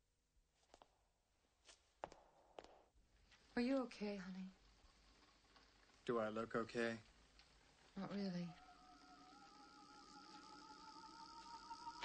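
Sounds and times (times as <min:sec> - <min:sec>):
soft footsteps: 0:00.5 - 0:08.6.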